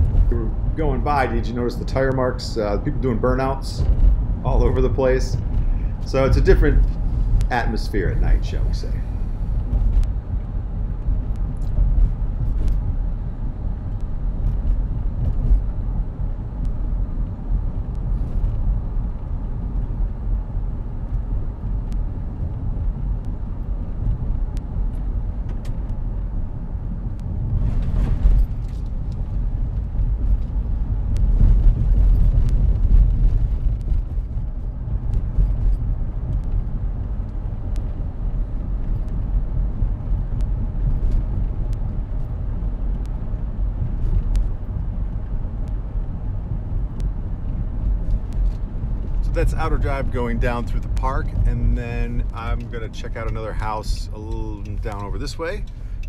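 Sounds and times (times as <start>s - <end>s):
engine and tyre rumble: 0.0s - 56.0s
light ticks: 44.0s - 44.6s.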